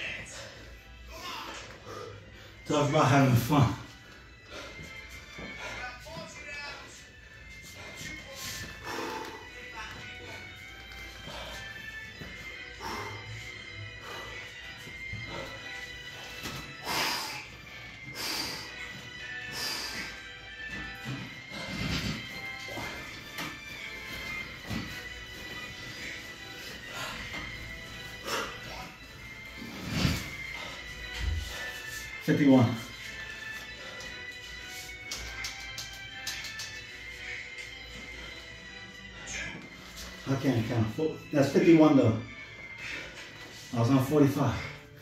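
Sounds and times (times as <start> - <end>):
background music: 0.0 - 45.0.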